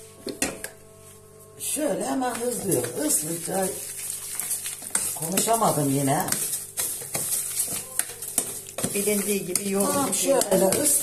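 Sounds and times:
spoon scraping through grains: 2.3 - 11.0.

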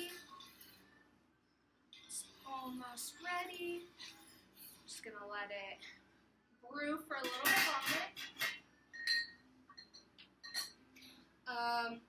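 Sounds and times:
metal spoon clinking in a cup: 9.0 - 10.8.

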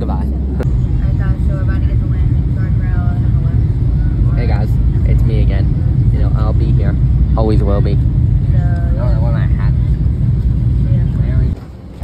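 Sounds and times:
airliner cabin rumble: 0.0 - 12.0.

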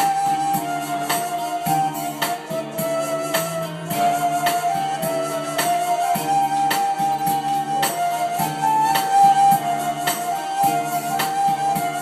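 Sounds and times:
drum beat: 0.0 - 12.0
keyboard melody with chords: 0.0 - 12.0.

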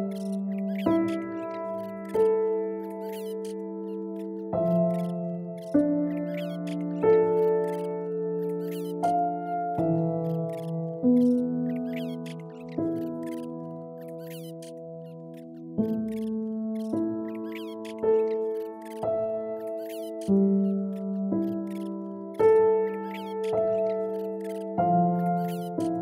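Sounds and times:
slow calm piano music: 0.0 - 26.0
quick high chirps: 0.1 - 7.0, 7.6 - 9.1, 15.3 - 21.9.

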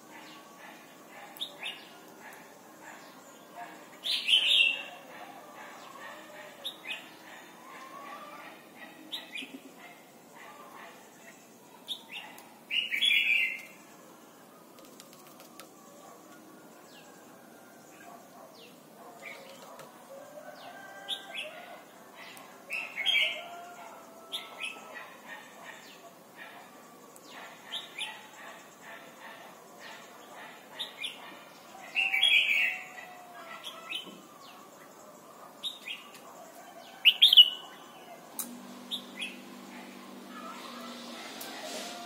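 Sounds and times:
bird chirping and singing: 0.1 - 2.0, 3.0 - 8.5, 11.2 - 13.8, 30.8 - 35.0, 35.6 - 38.2, 38.8 - 41.6.

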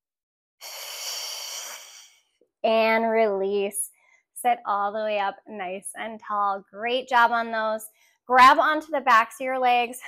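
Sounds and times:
woman exhaling breathily: 0.6 - 2.2.

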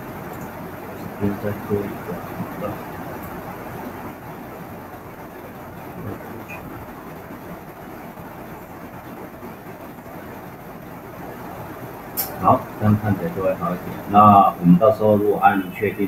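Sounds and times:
low rumbling hiss: 0.0 - 16.0.

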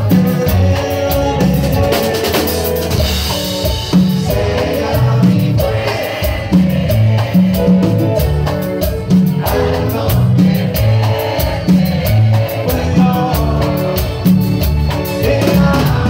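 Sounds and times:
lead vocal singing: 0.0 - 16.0
live band playing: 0.0 - 16.0.

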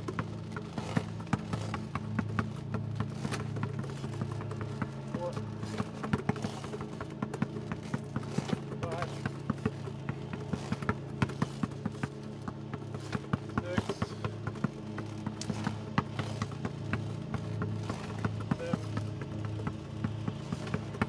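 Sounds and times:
basketball dribbling on asphalt: 0.0 - 21.0.

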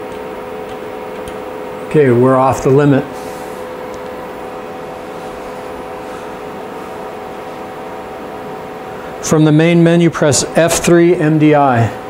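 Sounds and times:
milling machine hum with tones: 0.0 - 12.0.

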